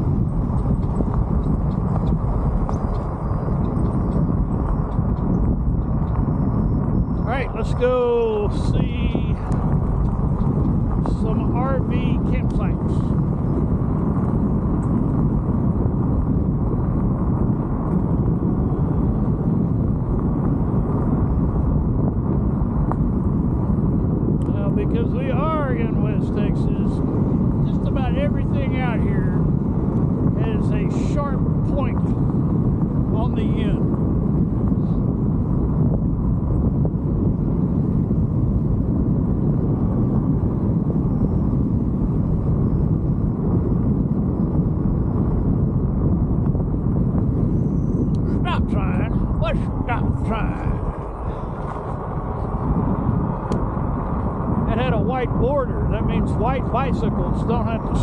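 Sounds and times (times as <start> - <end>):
scooter road rumble: 0.0 - 58.0
wind buffeting microphone: 0.0 - 58.0.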